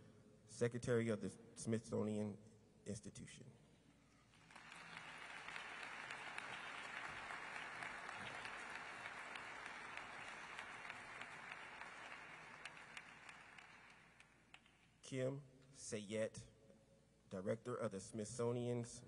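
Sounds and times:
audience applauding: 0:04.3 - 0:14.7.

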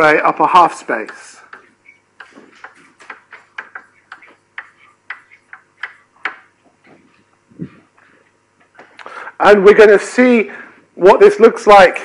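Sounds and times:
chalk tapping on blackboard: 0:01.0 - 0:07.1.

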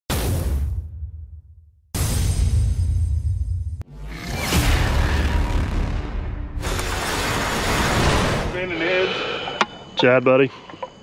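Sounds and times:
bass-heavy music: 0:02.0 - 0:07.1.

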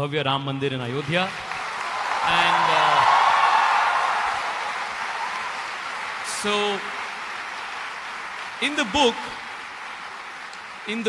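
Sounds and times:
audience applauding: 0:00.7 - 0:11.0.

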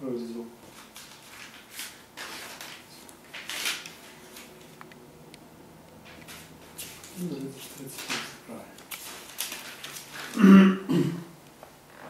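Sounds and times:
paper rustling: 0:00.6 - 0:04.8, 0:06.0 - 0:10.4.

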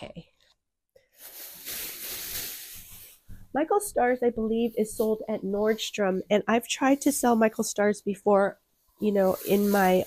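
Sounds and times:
plastic bag rustling: 0:01.0 - 0:07.4, 0:09.0 - 0:10.0.

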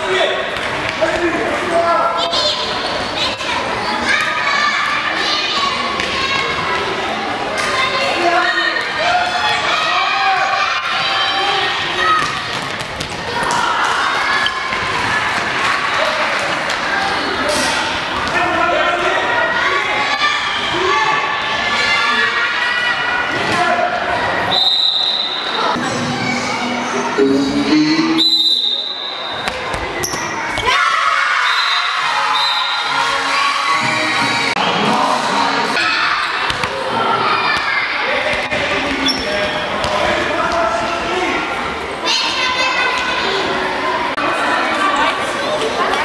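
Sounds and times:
referee's whistle blast: 0:28.0 - 0:29.3
children and spectators calling out: 0:30.2 - 0:39.4, 0:42.0 - 0:46.0
ball bouncing on hall floor: 0:36.4 - 0:36.8.

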